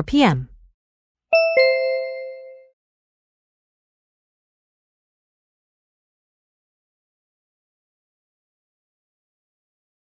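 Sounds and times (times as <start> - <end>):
two-note descending chime: 1.4 - 2.6.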